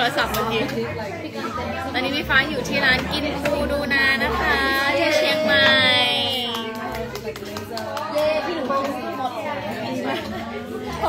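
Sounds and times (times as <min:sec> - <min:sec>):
background chatter of diners: 0:00.0 - 0:11.0.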